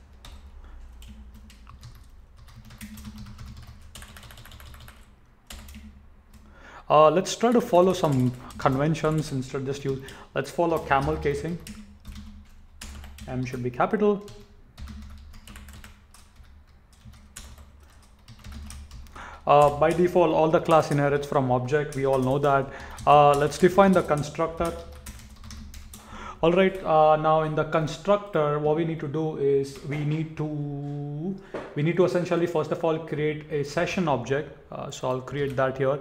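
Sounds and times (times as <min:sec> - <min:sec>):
computer keyboard typing: 0:00.1 - 0:06.5, 0:07.4 - 0:26.1
keyboard typing clicks: 0:00.2 - 0:06.4.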